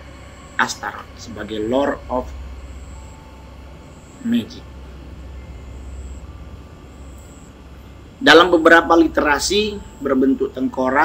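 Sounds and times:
faint hiss: 0:00.0 - 0:11.0
low background rumble: 0:00.0 - 0:11.0.

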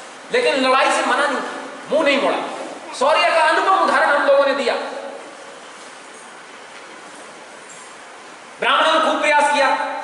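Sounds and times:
room noise hiss: 0:00.0 - 0:10.0.

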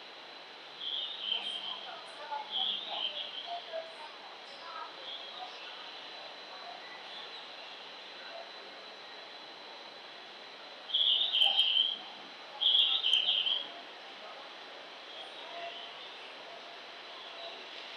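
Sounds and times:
recorded bird chirping from speaker: 0:10.9 - 0:12.0, 0:12.6 - 0:13.6.

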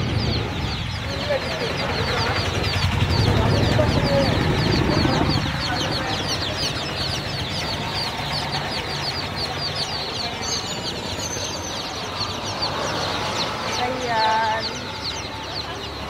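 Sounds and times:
baby chicks peeping: 0:00.0 - 0:16.0.

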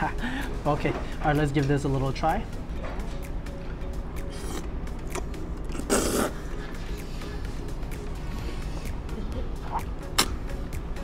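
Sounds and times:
background music: 0:00.0 - 0:11.0
person slurping noodles: 0:04.3 - 0:06.5.

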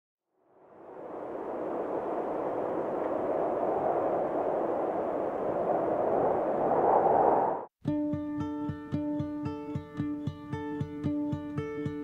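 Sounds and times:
rushing wind: 0:00.5 - 0:07.7
ukulele music: 0:07.8 - 0:12.0.

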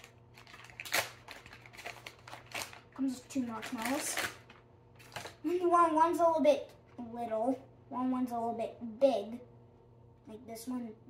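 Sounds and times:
plastic bag rustling: 0:00.0 - 0:05.5.

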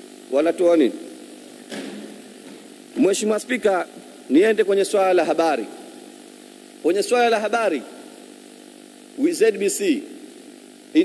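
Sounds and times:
faint microphone hum and hiss: 0:00.0 - 0:11.0.

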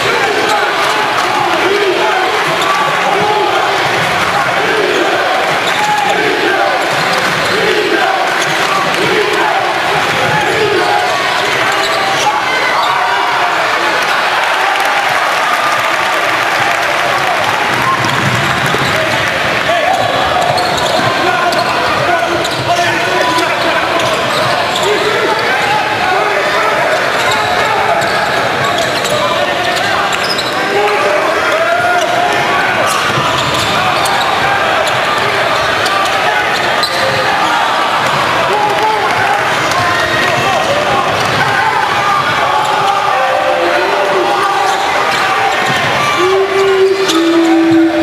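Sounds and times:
crowd voices: 0:00.0 - 0:48.0.

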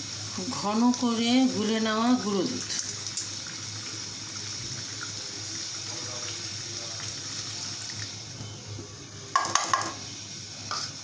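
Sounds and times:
food sizzling in a pot: 0:00.0 - 0:11.0.

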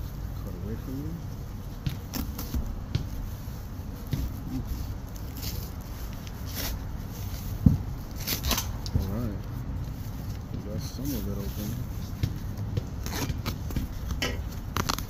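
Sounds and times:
knife slicing packing tape: 0:08.2 - 0:08.8.

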